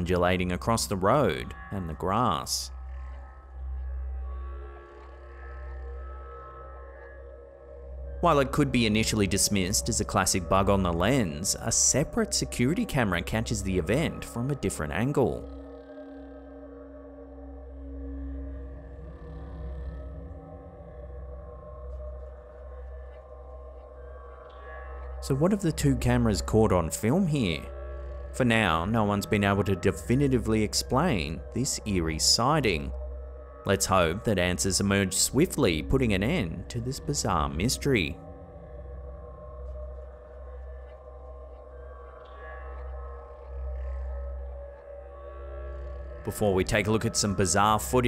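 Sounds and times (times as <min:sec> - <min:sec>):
ambient drone music: 0:00.0 - 0:48.0.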